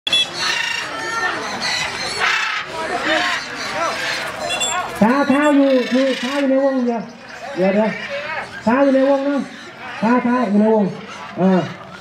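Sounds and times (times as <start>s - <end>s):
people's voices: 0.1s - 12.0s.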